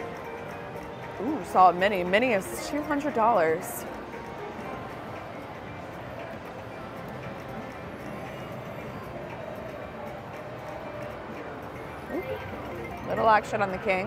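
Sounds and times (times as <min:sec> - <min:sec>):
slot machine game music: 0:00.0 - 0:14.0
slot machine spin sounds: 0:12.0 - 0:13.7.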